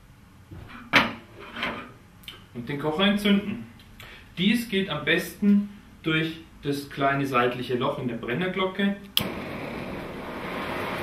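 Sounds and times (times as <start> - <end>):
stove lighting click: 9.2 - 9.4
gas burner flame hissing: 9.2 - 11.0.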